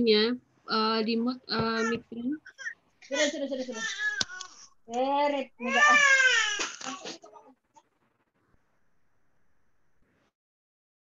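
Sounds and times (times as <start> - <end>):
child crying: 5.6 - 7.1.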